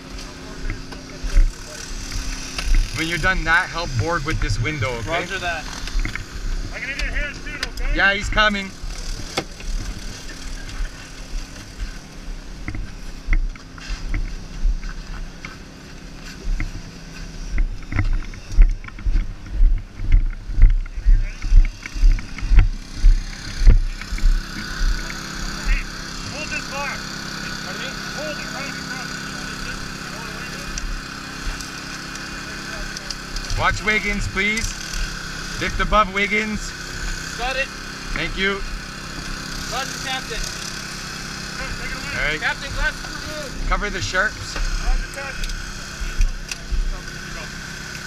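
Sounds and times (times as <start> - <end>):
hydraulic power unit engine: 0.0 - 48.0
heavy low thumps: 17.6 - 24.9.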